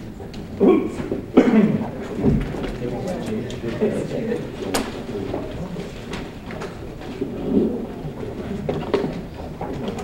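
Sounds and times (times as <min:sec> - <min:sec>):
murmur of many people talking: 0:00.0 - 0:10.0.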